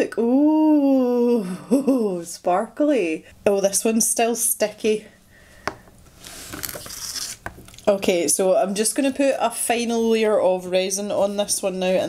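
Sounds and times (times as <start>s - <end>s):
mould scraping on plastic mat: 6.1s - 7.7s.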